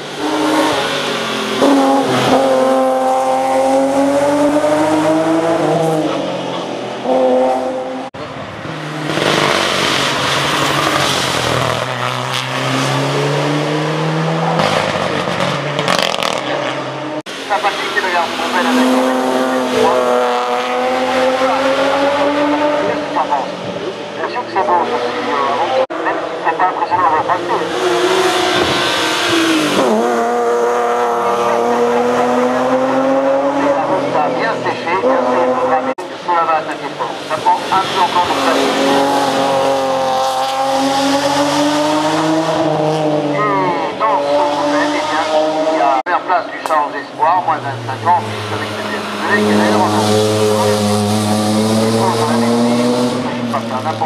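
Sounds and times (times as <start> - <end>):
racing car engines braking and accelerating: 0.0 - 54.0.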